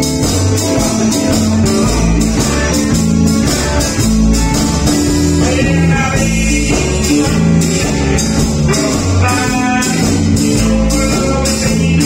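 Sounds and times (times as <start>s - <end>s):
electric guitar: 0.0s - 12.0s
steady drum beat: 0.0s - 12.0s
sustained bass notes: 0.0s - 12.0s.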